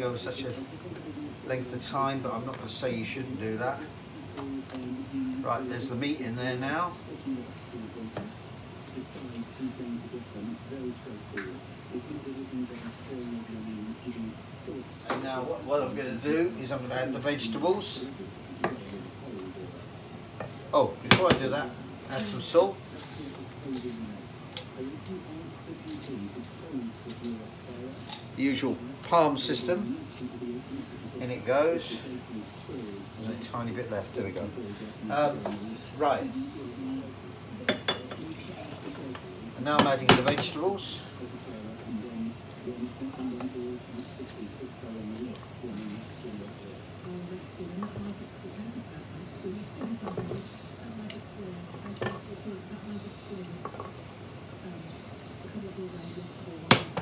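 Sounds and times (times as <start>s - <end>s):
faint voices murmuring: 0.0s - 57.0s
low voice: 6.9s - 15.2s, 34.4s - 48.7s.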